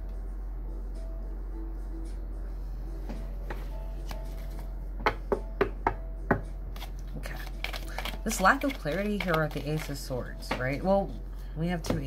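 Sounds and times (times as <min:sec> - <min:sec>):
low hum: 0:00.0 - 0:08.3
cards being shuffled: 0:06.8 - 0:10.0.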